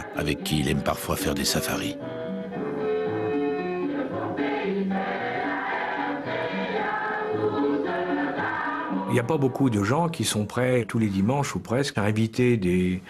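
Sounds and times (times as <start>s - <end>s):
choir singing held notes: 3.6s - 10.2s.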